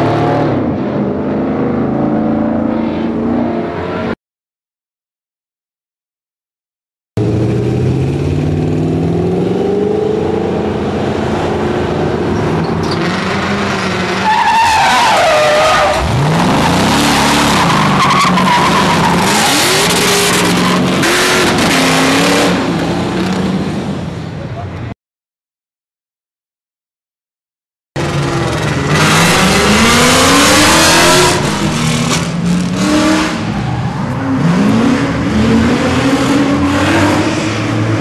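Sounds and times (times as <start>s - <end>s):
car engine revving: 7.2s - 23.9s, 28.0s - 38.0s
tires squealing: 12.1s - 22.3s.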